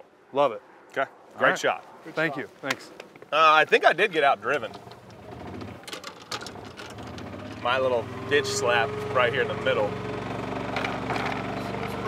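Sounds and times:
light clicks and rattles: 0:04.5 - 0:07.3
golf cart motor humming: 0:04.6 - 0:12.0.

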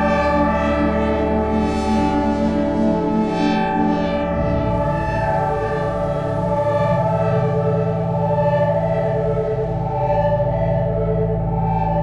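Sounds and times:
synthesizer pad chord: 0:00.0 - 0:12.0
low bass tone: 0:04.1 - 0:12.0.

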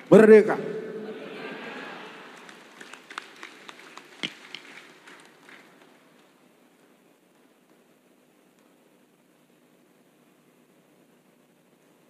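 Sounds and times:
audience clapping in a hall: 0:01.7 - 0:07.8.

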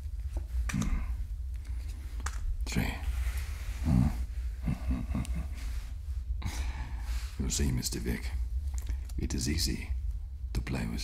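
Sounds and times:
steady low rumble: 0:00.0 - 0:11.0
man chuckling and humming: 0:03.8 - 0:06.8.

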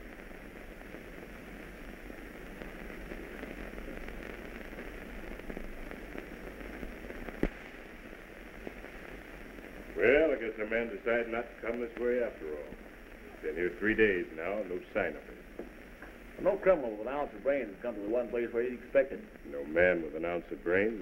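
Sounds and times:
film soundtrack hiss and crackle: 0:00.0 - 0:21.0
steady low hum: 0:00.0 - 0:21.0.

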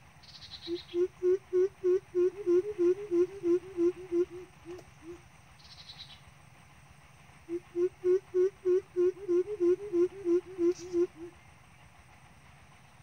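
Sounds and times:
bird deep hoots: 0:00.6 - 0:05.2, 0:07.5 - 0:11.4.

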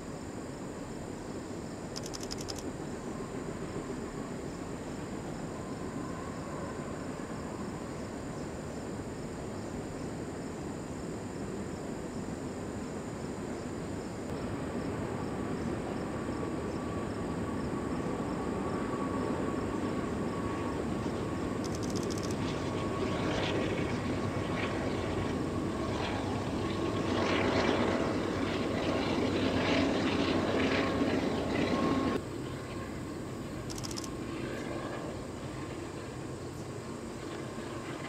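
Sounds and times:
freight train rumbling over bridge: 0:27.8 - 0:34.3.

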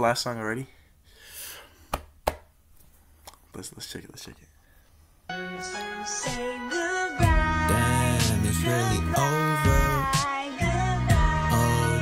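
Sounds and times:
soft breathy hiss: 0:00.6 - 0:01.9.

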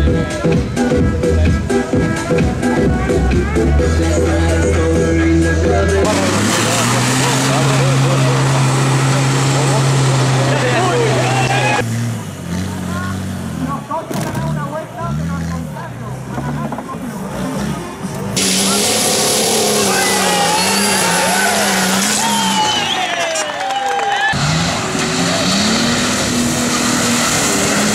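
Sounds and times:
engine revving: 0:00.0 - 0:23.1, 0:24.3 - 0:27.9
people's voices: 0:00.0 - 0:25.9
off-road engines labouring: 0:00.0 - 0:27.9
loud hiss: 0:18.4 - 0:20.2.

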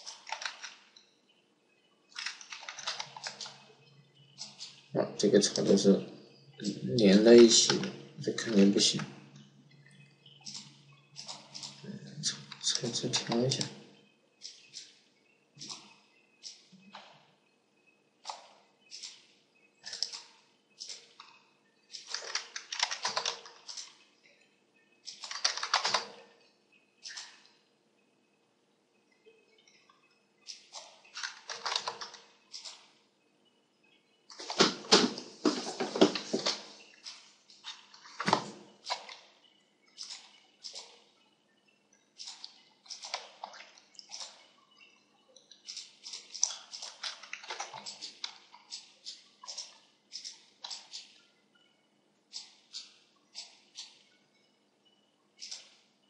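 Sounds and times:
computer mouse and keyboard clicking: 0:00.0 - 0:01.0, 0:02.1 - 0:03.7, 0:06.6 - 0:09.1, 0:10.4 - 0:13.8, 0:18.2 - 0:19.2, 0:19.8 - 0:24.0, 0:25.0 - 0:26.2, 0:30.5 - 0:32.9, 0:40.0 - 0:41.0, 0:42.2 - 0:44.5, 0:45.4 - 0:51.2, 0:55.4 - 0:55.8.

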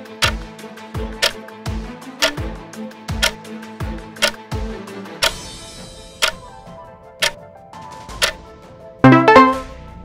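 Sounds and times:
soft background music: 0:00.0 - 0:09.7
timer ticking: 0:09.1 - 0:09.6.

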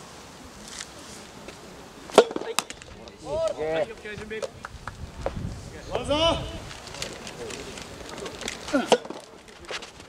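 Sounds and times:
racket hitting tennis ball: 0:02.1 - 0:02.9.

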